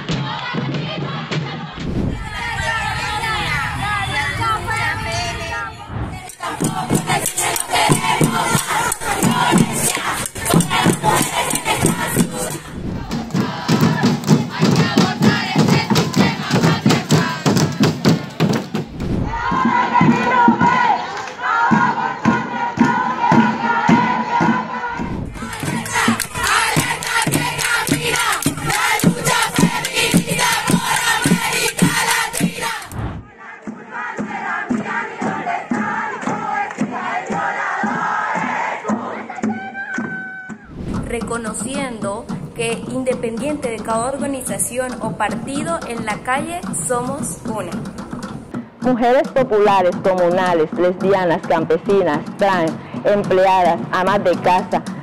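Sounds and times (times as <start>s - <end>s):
street drums beating rhythm: 0.0s - 4.2s, 6.2s - 55.0s
women chanting in unison: 0.0s - 18.4s, 19.2s - 47.8s.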